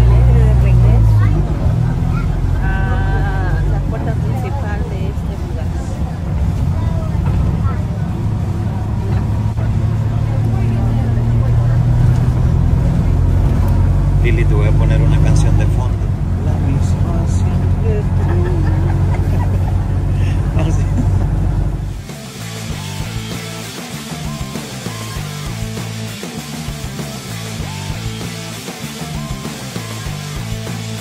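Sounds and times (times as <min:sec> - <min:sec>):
vehicle engine drone: 0:00.0 - 0:31.0.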